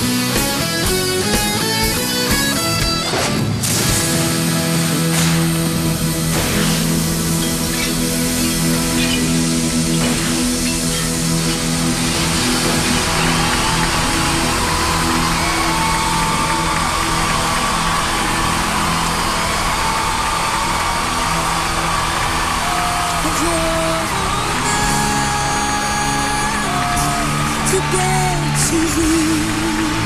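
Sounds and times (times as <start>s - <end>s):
rock band playing: 0.0s - 30.0s
crowd cheering and screaming: 5.7s - 30.0s.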